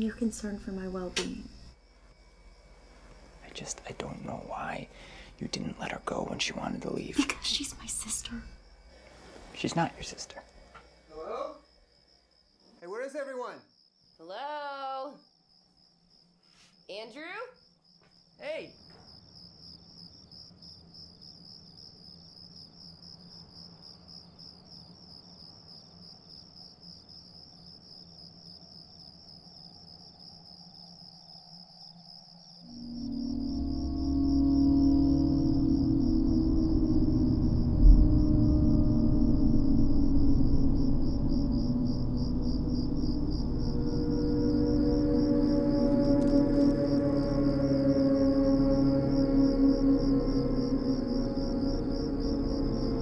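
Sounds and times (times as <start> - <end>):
crickets chirping: 0.0 - 53.0
low sustained drone: 32.7 - 53.0.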